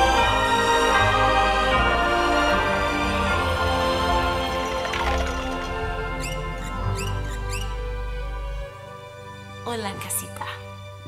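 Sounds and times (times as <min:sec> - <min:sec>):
held music: 0:00.0 - 0:11.0.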